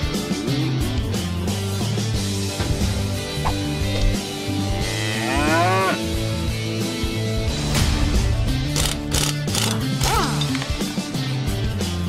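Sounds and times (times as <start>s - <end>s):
background music: 0.0s - 12.0s
cow mooing: 4.6s - 6.2s.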